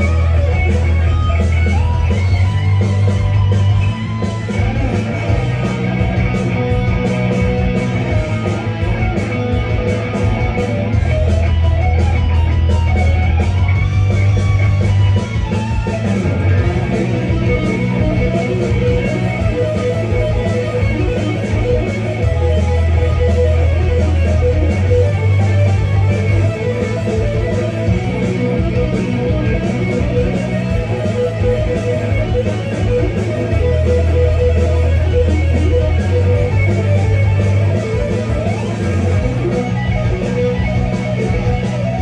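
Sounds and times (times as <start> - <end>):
solo electric guitar: 0.0 - 42.0.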